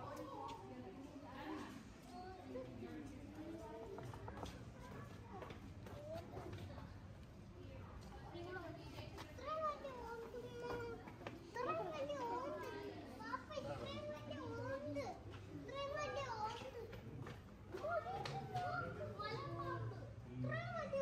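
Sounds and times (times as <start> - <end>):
children chattering and calling out: 0.0 - 21.0.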